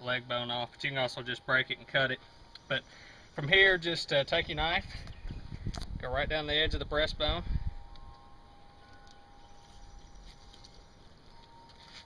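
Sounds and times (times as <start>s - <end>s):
thin steady high tone: 0.0s - 5.6s, 6.4s - 12.0s.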